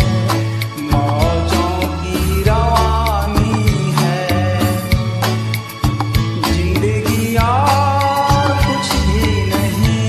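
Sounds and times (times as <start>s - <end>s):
song with steady drum beat: 0.0s - 10.0s.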